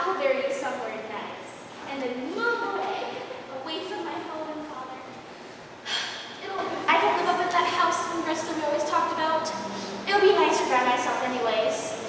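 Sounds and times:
sharp gasp: 5.8 - 6.2
woman's voice: 6.4 - 12.0.

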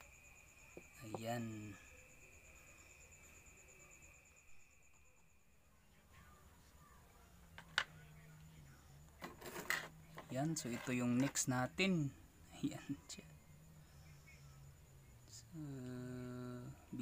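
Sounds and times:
faint high whine: 0.0 - 17.0.

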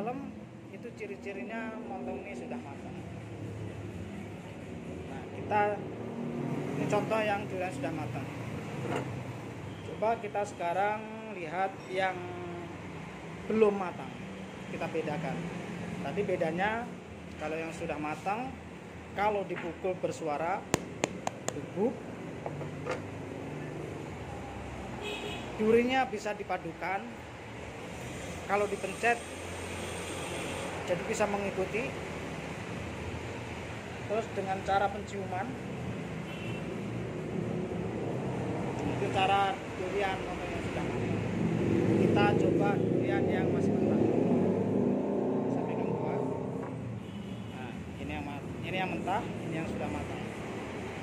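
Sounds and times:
man talking: 19.2 - 22.0, 47.6 - 50.4.

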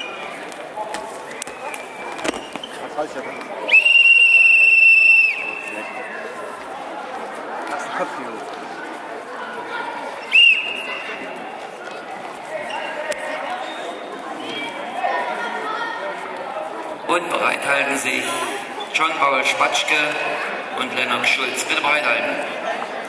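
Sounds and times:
chatter of voices: 0.0 - 23.0
referee's whistle blasts: 3.7 - 5.8.

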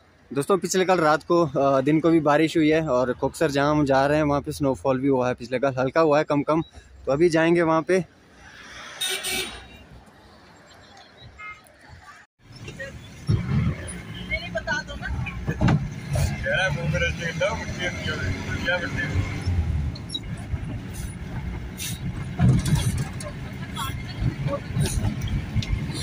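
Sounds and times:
engine and road rumble: 0.0 - 26.0.

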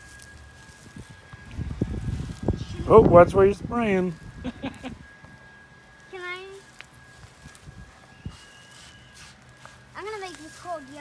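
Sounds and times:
spray bottle spritzing: 8.3 - 10.8.

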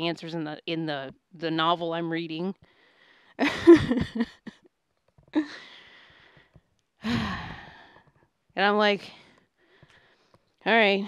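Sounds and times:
woman sighing: 5.4 - 6.2, 7.0 - 8.1.

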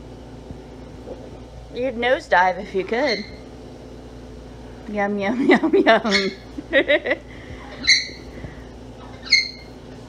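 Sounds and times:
parrot chirp: 3.0 - 3.4, 6.1 - 6.4, 7.7 - 8.4, 9.0 - 9.8.

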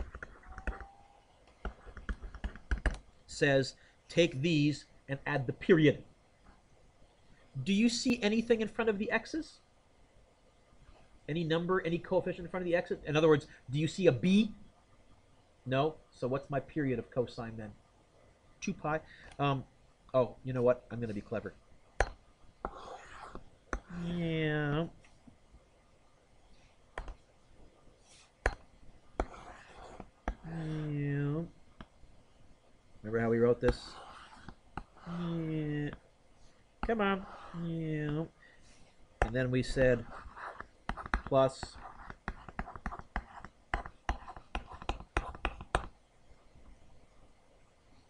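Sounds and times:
stylus tapping on tablet screen: 0.0 - 3.1, 22.0 - 23.9, 26.9 - 27.3, 28.4 - 30.5, 40.2 - 46.0.

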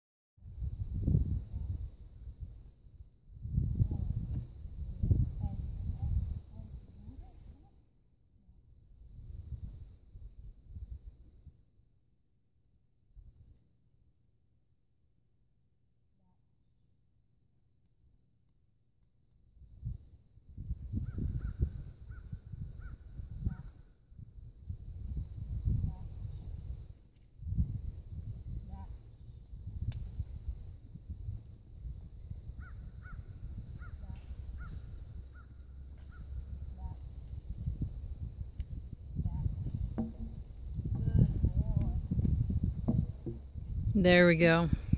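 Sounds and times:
wind buffeting microphone: 0.5 - 2.6, 3.3 - 7.3, 19.7 - 44.0.

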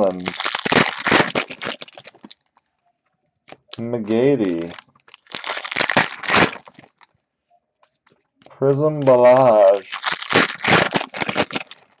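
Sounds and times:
foil wrapper crinkling: 0.0 - 2.5, 3.7 - 7.1, 9.0 - 12.0.

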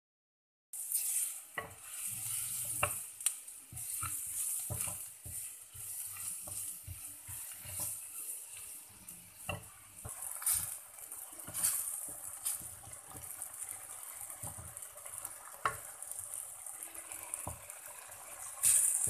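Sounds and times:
spatula stirring thick curry: 0.8 - 15.9
curry sizzling: 0.8 - 19.0.

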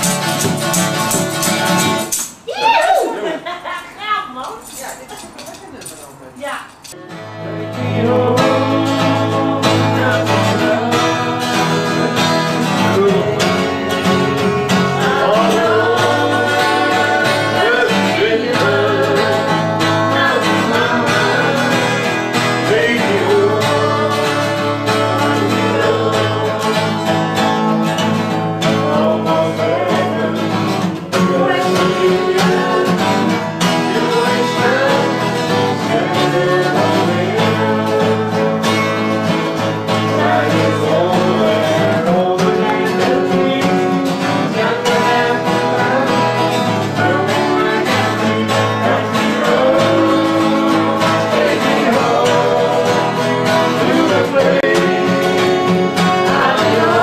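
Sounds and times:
acoustic guitars strumming: 0.0 - 57.0
people singing: 7.2 - 57.0.

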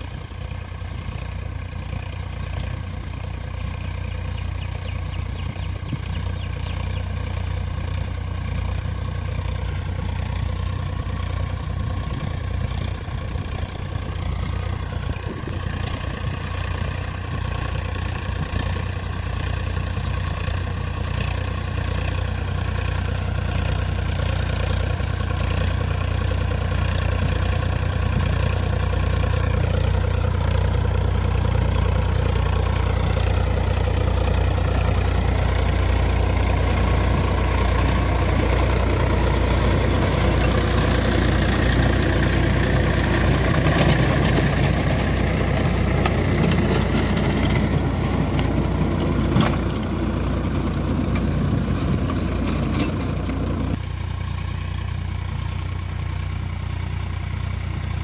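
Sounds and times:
rotavator tilling dry soil: 0.0 - 58.0
tractor diesel engine under load: 0.0 - 58.0.

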